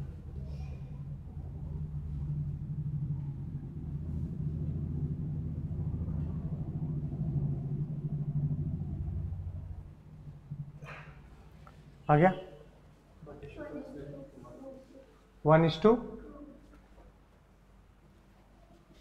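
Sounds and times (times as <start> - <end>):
low rumbling hum: 0.0 - 19.0.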